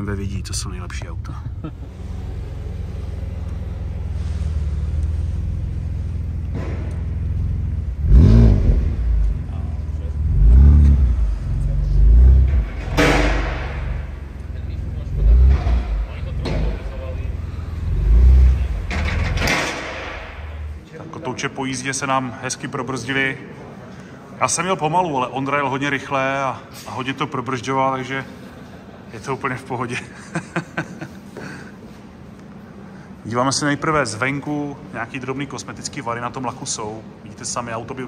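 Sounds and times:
car engine idling and revving: 0.0s - 20.8s.

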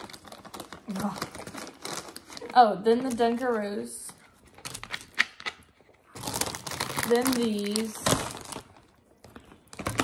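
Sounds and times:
plastic chip bag crinkling: 0.0s - 10.0s.

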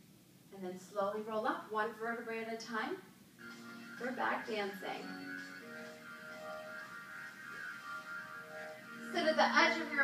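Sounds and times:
slow background music: 3.4s - 10.0s.

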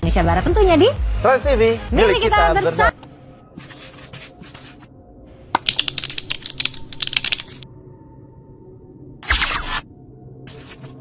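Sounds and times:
sharp irregular clicks: 5.6s - 7.6s.

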